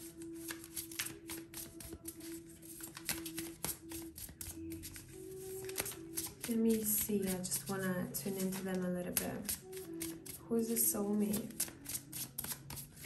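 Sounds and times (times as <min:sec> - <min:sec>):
soft background music: 0:00.0 - 0:13.0
cards being shuffled: 0:00.4 - 0:10.4, 0:11.3 - 0:13.0.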